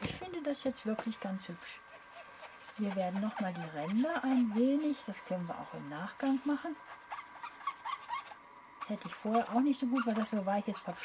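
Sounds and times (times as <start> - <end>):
foam sponge dabbing on paper: 0.0 - 11.0.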